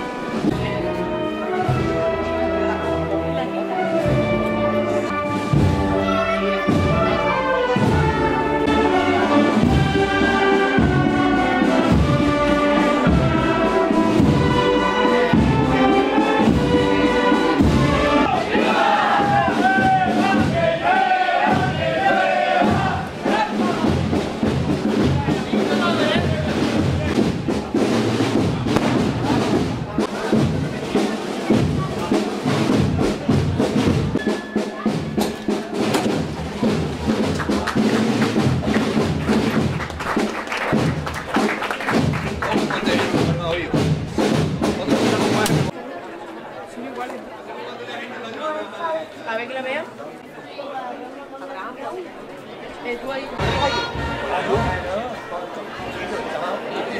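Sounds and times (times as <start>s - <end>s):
procession band music: 0.0s - 45.7s, 53.4s - 55.3s
crowd chatter: 0.0s - 56.9s
steady drum beat: 5.1s - 45.8s, 53.4s - 55.1s.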